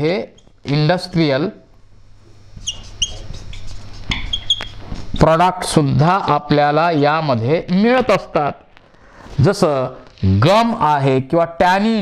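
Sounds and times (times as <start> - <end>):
marker squeaking on whiteboard: 0.2 - 0.6, 2.5 - 5.4.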